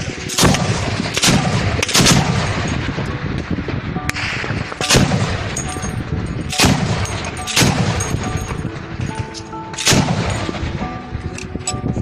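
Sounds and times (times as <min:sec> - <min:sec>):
loud gunshots: 0:00.2 - 0:03.0, 0:04.2 - 0:05.9, 0:06.5 - 0:08.3, 0:09.8 - 0:10.8.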